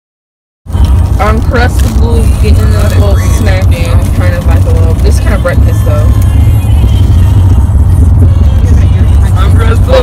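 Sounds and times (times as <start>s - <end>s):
car rumble from inside cabin: 0.7s - 10.0s.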